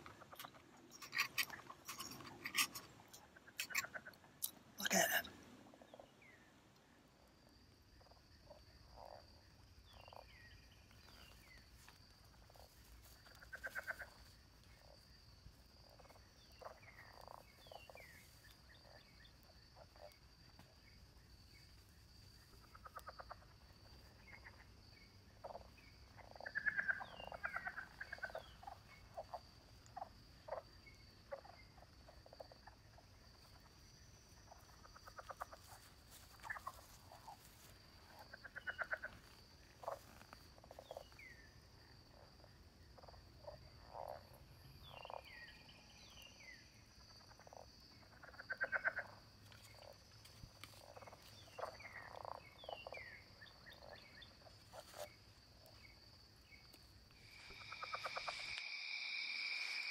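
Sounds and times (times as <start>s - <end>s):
frogs croaking: 0.0s - 59.9s
high insect trill: 7.4s - 59.9s.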